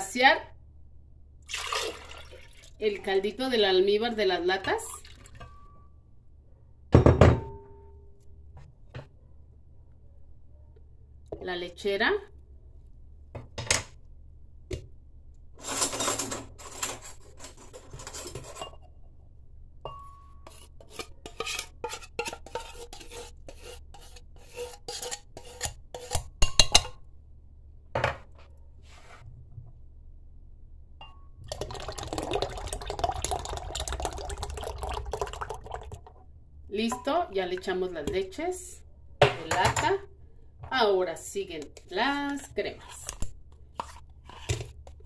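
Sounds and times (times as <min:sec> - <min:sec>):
milk pouring into jar: 0:01.5 - 0:02.8, 0:31.5 - 0:36.1
spoon scraping metal can: 0:20.4 - 0:26.4.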